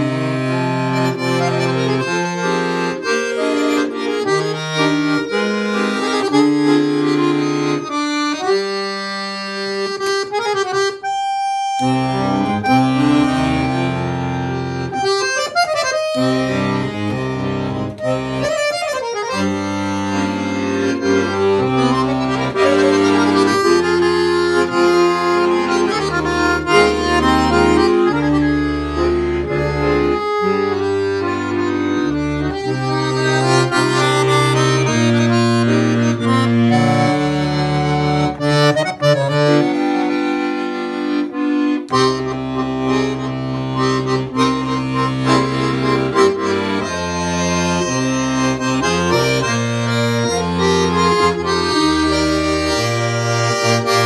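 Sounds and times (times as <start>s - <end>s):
solo accordion playing: 0.0s - 54.0s.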